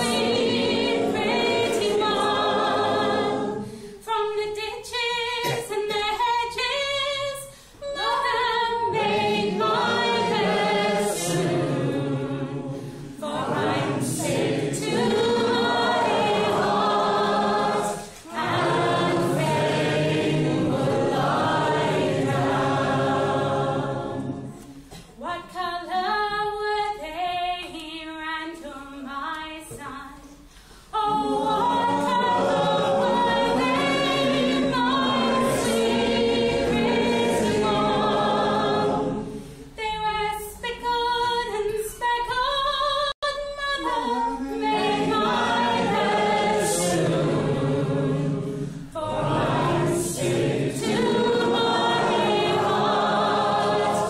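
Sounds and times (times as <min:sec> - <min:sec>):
group singing along: 0:00.0 - 0:27.2, 0:30.9 - 0:42.5, 0:43.4 - 0:54.0.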